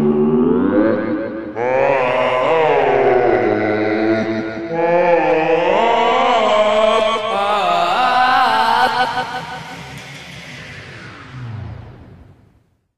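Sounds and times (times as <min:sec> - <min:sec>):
voices singing long chant-like notes: 0:00.0 - 0:11.2.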